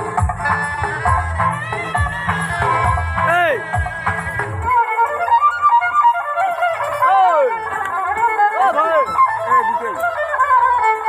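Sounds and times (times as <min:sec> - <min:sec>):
dance music with sliding melody: 0:00.0 - 0:11.0.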